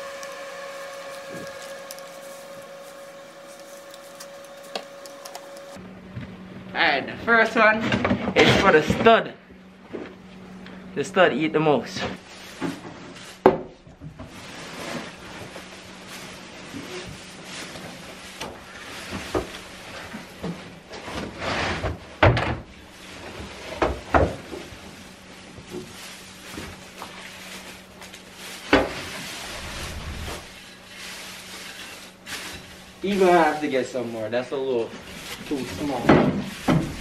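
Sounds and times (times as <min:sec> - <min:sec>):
dry hay rustling: 0:00.0 - 0:05.8, 0:24.8 - 0:34.2, 0:35.1 - 0:37.0.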